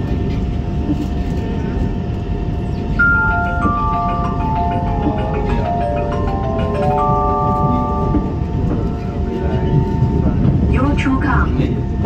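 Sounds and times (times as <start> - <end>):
train wheels rumbling on rails: 0.0 - 12.0.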